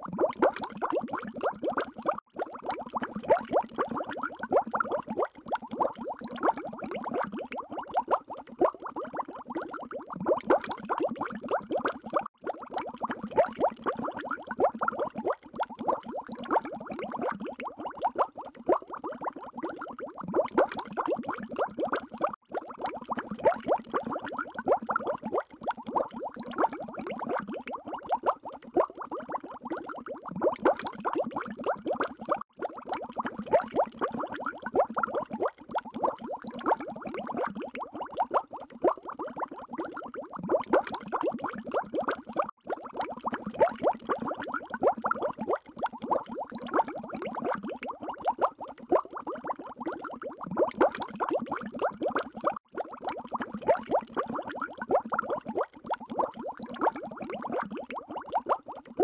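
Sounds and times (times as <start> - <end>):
water bubbling: 0.0 - 59.0.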